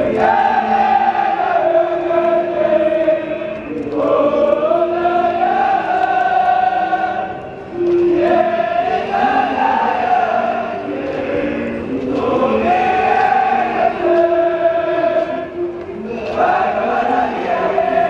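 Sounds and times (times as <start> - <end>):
young men singing in chorus: 0.0 - 18.0.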